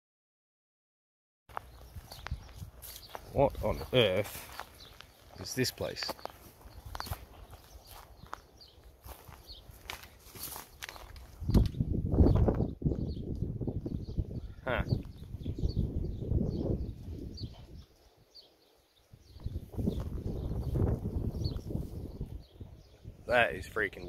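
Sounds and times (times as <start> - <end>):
wind buffeting microphone: 1.6 - 5.0, 6.5 - 8.4, 9.0 - 18.1, 19.1 - 24.0.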